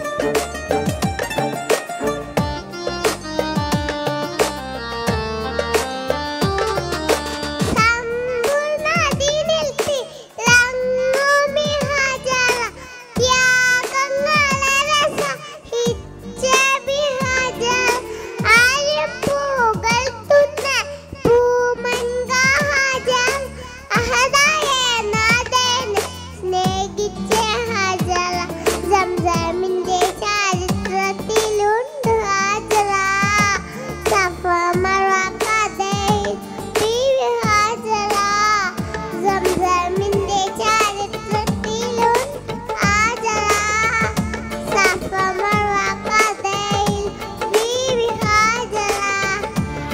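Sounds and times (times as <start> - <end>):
accompanying music with percussion: 0.0 - 21.3, 21.9 - 49.9
girl singing: 7.6 - 49.9.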